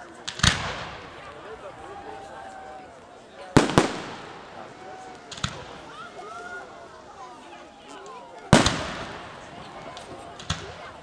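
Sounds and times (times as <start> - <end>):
people chattering: 0.0 - 11.0
fireworks bursting: 0.2 - 1.7, 3.5 - 7.2, 8.5 - 11.0.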